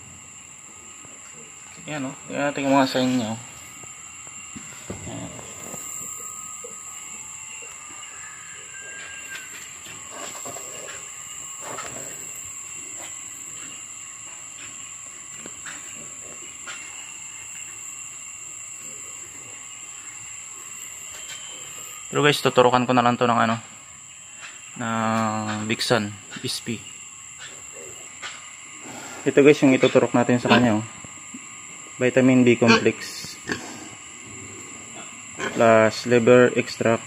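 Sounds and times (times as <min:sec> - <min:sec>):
insect drone: 0:00.0 - 0:37.0
outdoor background hiss: 0:00.0 - 0:37.0.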